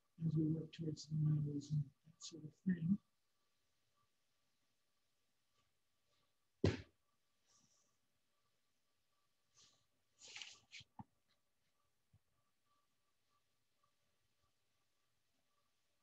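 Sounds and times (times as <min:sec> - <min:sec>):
dull thump of clay: 0:06.6 - 0:06.9
clay brushing and tapping: 0:09.6 - 0:12.4.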